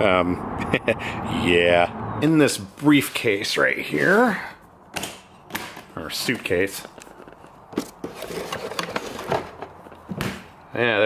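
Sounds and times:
objects rummaged in a case: 0:06.2 - 0:10.0.

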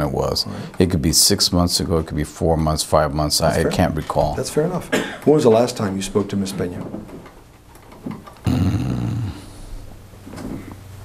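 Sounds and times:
man humming hmm: 0:08.4 - 0:09.8.

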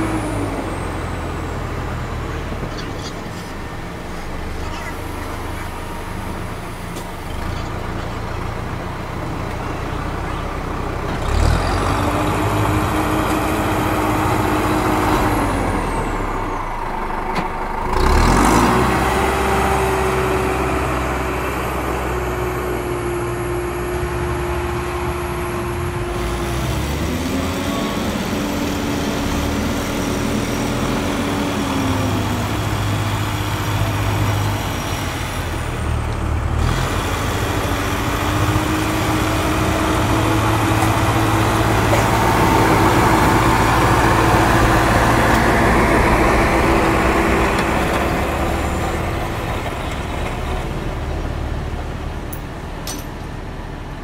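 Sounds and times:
truck engine running: 0:00.0 - 0:54.0.

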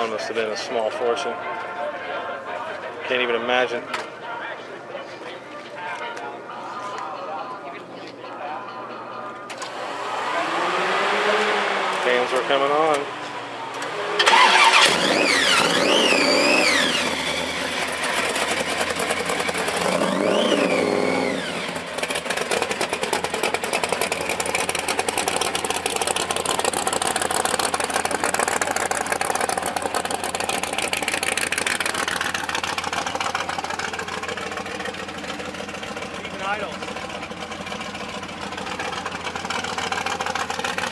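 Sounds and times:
car engine idling: 0:08.9 - 0:40.9
car engine starting and revving: 0:09.5 - 0:40.9.

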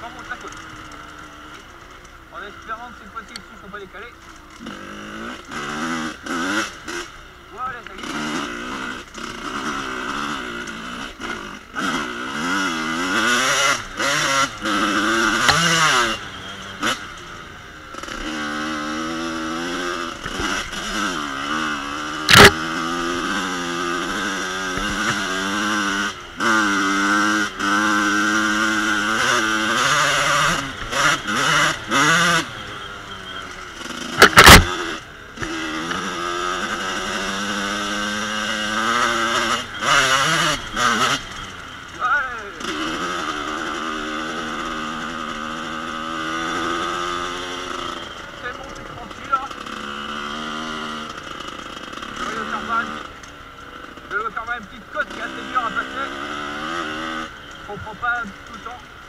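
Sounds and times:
motorcycle engine revving: 0:00.0 - 0:59.0
sharp knocks: 0:34.2 - 0:34.8.

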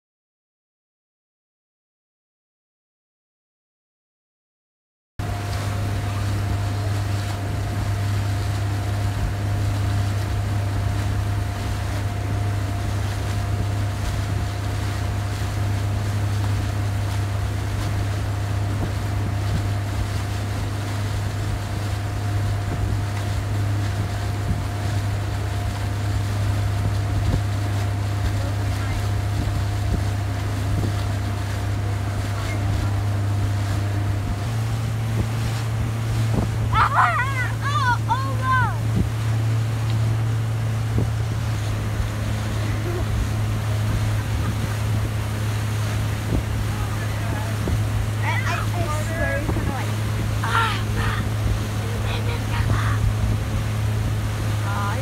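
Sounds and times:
motorboat engine drone: 0:05.2 - 0:55.0
wind on microphone: 0:09.0 - 0:55.0.

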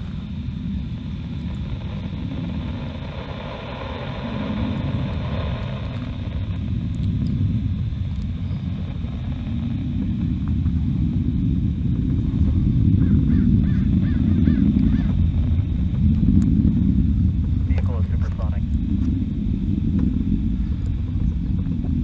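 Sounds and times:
distant rocket engine rumble: 0:00.0 - 0:22.0.

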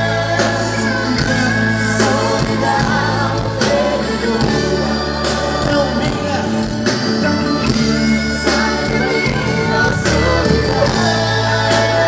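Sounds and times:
live band with singing: 0:00.0 - 0:12.0.

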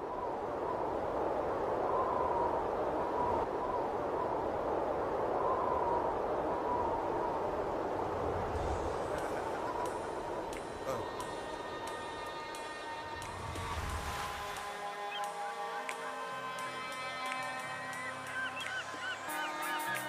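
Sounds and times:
steady rushing noise: 0:00.0 - 0:20.0.

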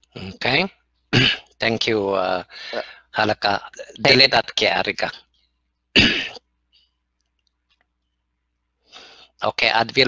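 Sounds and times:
person clearing throat: 0:01.1 - 0:01.5, 0:06.0 - 0:06.4.

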